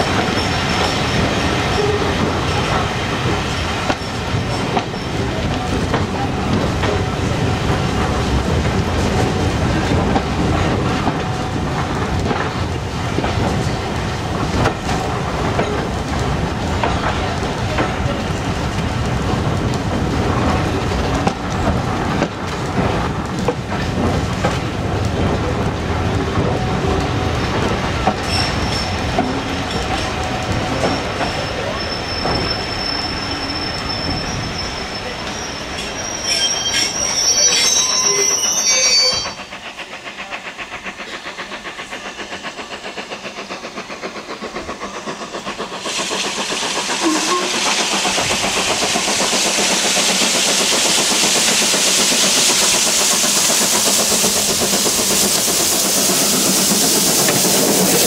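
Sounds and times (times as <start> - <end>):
train wheel squeal: 0.0 - 8.4, 26.2 - 58.0
steam locomotive hissing: 0.0 - 58.0.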